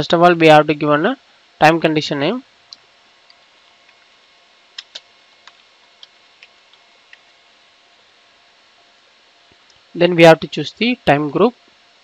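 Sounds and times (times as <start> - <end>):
keyboard keys clicking: 4.8 - 7.2.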